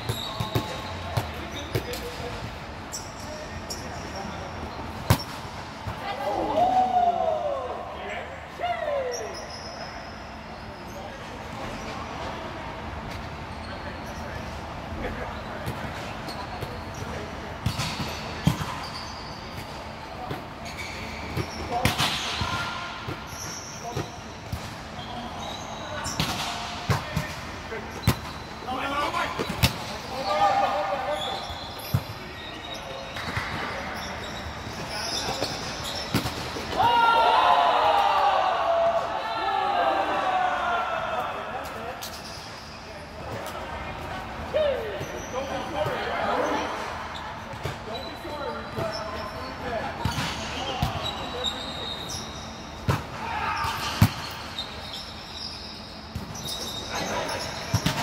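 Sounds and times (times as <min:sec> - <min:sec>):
volleyball slaps: 0:26.1 - 0:27.4
players shouting: 0:36.7 - 0:41.6.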